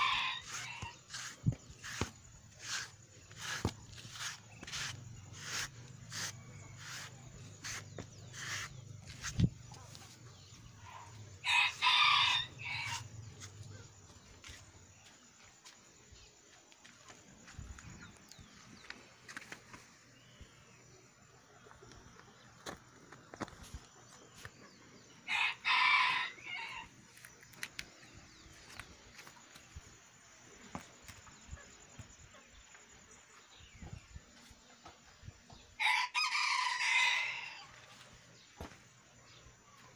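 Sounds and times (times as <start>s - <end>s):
rooster crowing: 0.0s - 2.9s, 11.0s - 13.2s, 25.3s - 26.9s, 35.8s - 37.8s.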